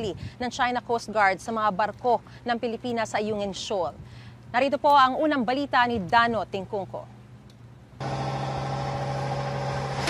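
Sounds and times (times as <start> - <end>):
boat engine droning: 8.0 - 10.0.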